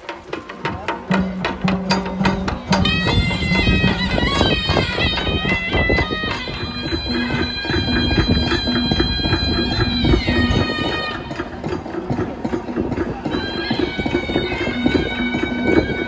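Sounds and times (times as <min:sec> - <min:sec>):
reedy double-reed pipe: 0:00.0 - 0:16.0
steady drum beat: 0:00.0 - 0:16.0.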